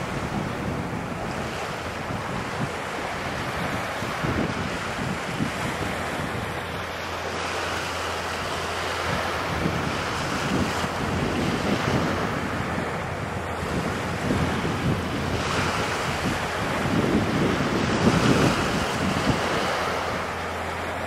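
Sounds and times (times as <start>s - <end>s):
water wash: 0.0s - 21.0s
wind buffeting microphone: 0.0s - 21.0s.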